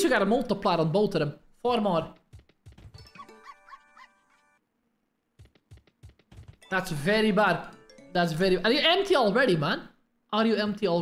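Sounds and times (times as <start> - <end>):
slot game jingle: 6.6 - 8.8.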